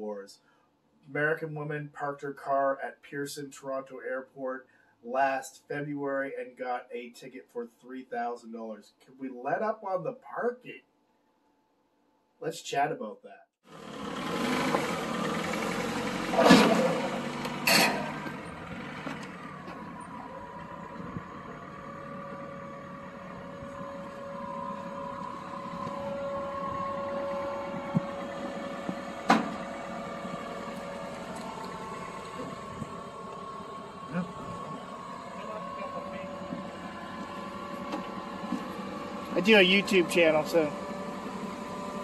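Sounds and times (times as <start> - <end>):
vehicle engine idling with whine: 13.7 - 42.0.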